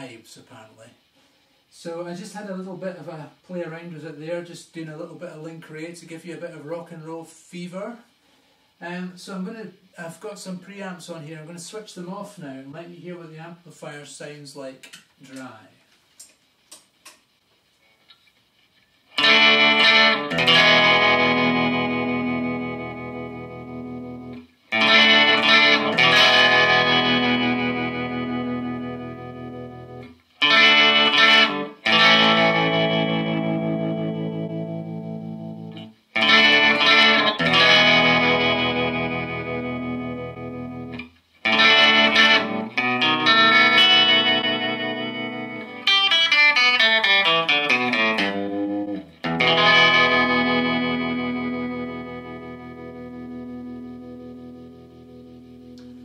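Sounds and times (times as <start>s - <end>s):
clean electric guitar chords: 19.2s - 56.0s.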